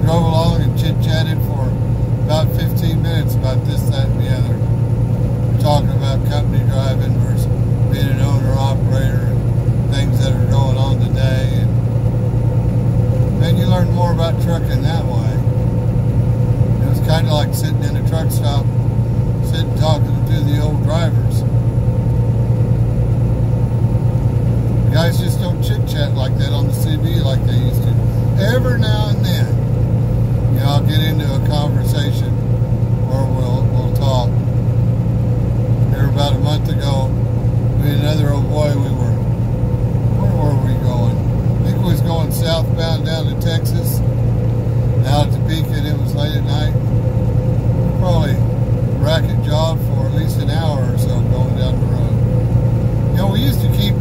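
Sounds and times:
indistinct voices: 0.0s - 4.6s, 5.6s - 11.7s, 13.2s - 15.5s, 16.8s - 18.7s, 19.4s - 21.4s, 24.9s - 29.6s, 30.5s - 32.4s, 33.0s - 34.4s, 35.9s - 37.1s, 37.8s - 39.2s, 40.1s - 44.0s, 45.0s - 46.8s, 47.9s - 52.2s, 53.1s - 54.0s
truck engine and road drone: 0.0s - 54.0s.

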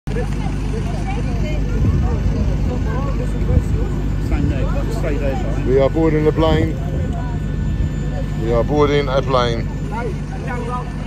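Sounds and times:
crowd chatter: 0.1s - 11.0s
low mechanical drone: 0.1s - 11.0s.

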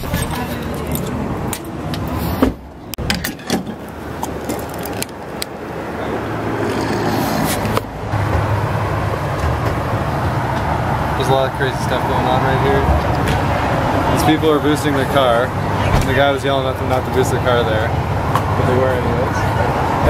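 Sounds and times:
vehicle and gas station noise: 0.0s - 20.0s.

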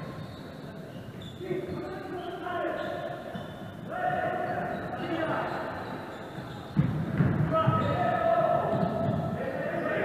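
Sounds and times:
players' voices: 0.1s - 10.0s
basketball bouncing on wooden floor: 6.7s - 9.3s.

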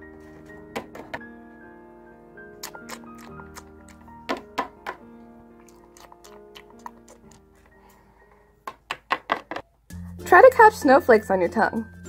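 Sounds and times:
background music: 0.0s - 12.0s
plastic toy figurines tapping shelf: 8.7s - 9.7s.

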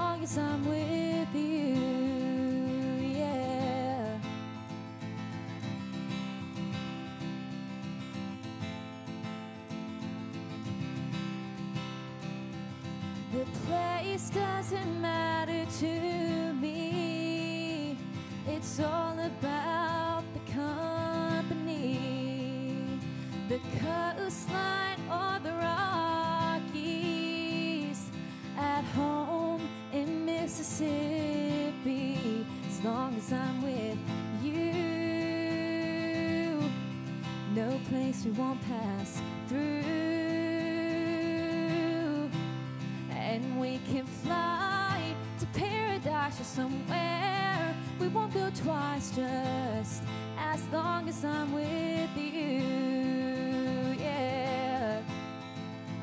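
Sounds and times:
woman singing: 0.0s - 8.8s, 12.5s - 56.0s
acoustic guitar strumming: 0.0s - 56.0s.

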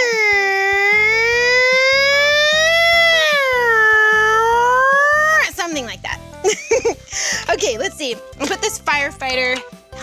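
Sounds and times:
woman imitating siren: 0.0s - 5.6s
background music with beat: 0.0s - 10.0s.

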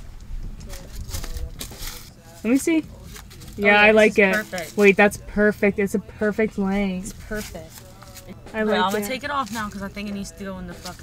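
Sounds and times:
clothing rustling: 0.6s - 4.9s, 7.0s - 11.0s.

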